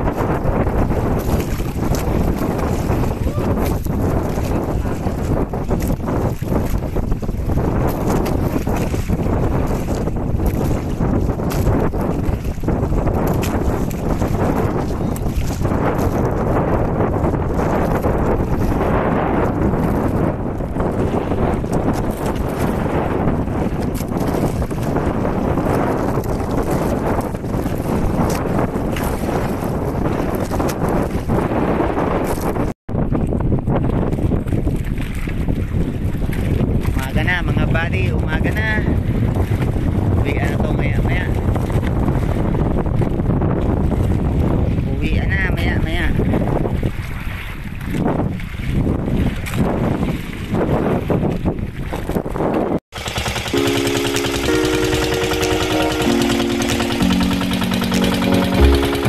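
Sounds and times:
boat engine low rumble: 0.0s - 30.4s, 52.9s - 59.0s
wind buffeting microphone: 0.0s - 53.6s.

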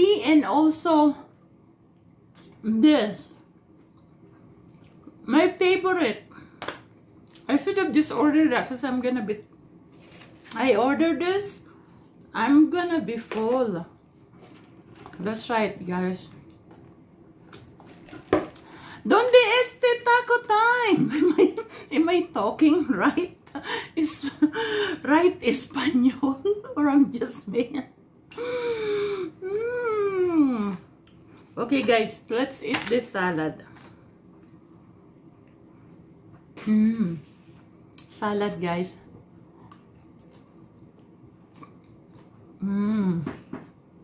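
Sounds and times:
chewing crisp lettuce: 39.6s - 42.5s.

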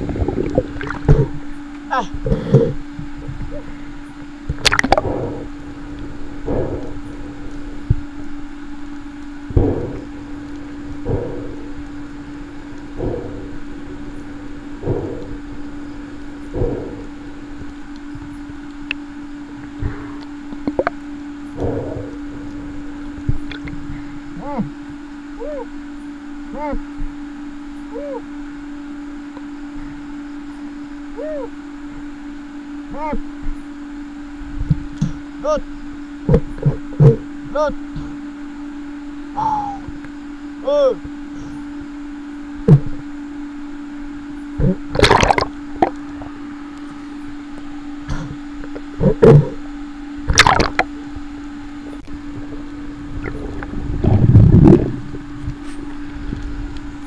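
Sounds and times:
muffled underwater sound: 0.0s - 28.7s, 29.3s - 32.1s, 32.7s - 57.0s
steady low hum: 0.0s - 57.0s.

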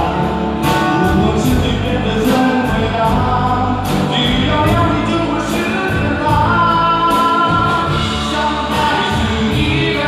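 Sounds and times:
drums with cymbal hits: 0.0s - 10.0s
electric guitars: 0.0s - 10.0s.

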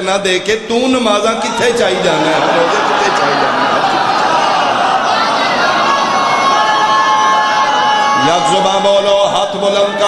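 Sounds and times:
crowd of men shouting: 1.4s - 9.1s.

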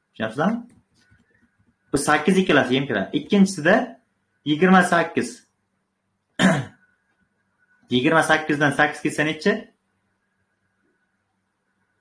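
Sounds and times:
man clearing throat: 6.4s - 6.8s.

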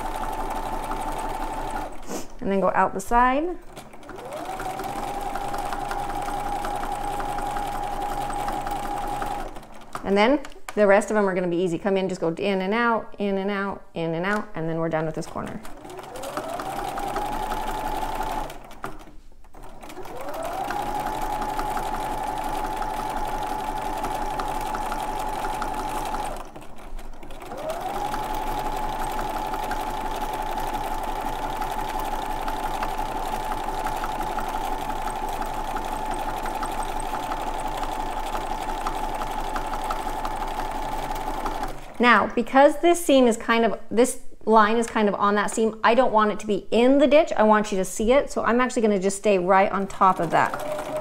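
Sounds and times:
sewing machine stitching: 0.0s - 10.9s, 15.0s - 42.5s, 49.4s - 51.0s
needle ticking: 49.9s - 51.0s.

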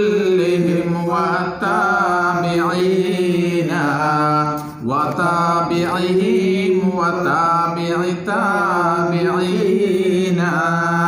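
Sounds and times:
men chanting: 0.0s - 11.0s.

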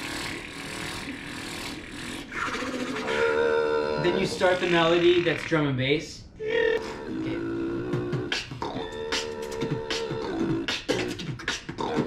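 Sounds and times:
beatboxer singing held notes: 8.0s - 12.0s.

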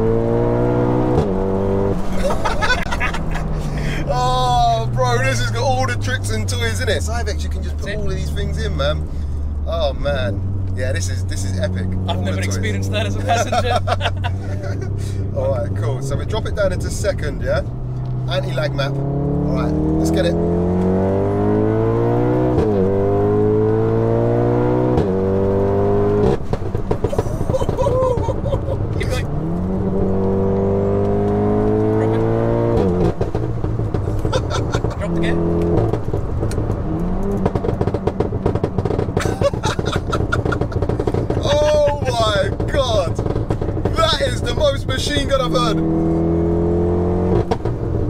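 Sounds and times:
car engine accelerating hard: 0.0s - 48.0s
exhaust pops and bangs: 24.9s - 46.4s, 47.3s - 48.0s.

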